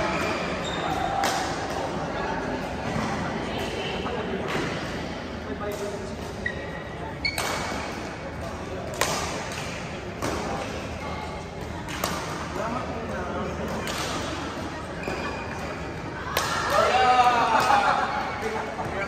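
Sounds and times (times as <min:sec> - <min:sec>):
court shoes squeaking: 0:00.0 - 0:01.9, 0:05.7 - 0:16.2
players' voices: 0:00.0 - 0:19.0
rackets striking shuttlecock: 0:00.2 - 0:02.0, 0:07.2 - 0:12.8, 0:13.6 - 0:14.4.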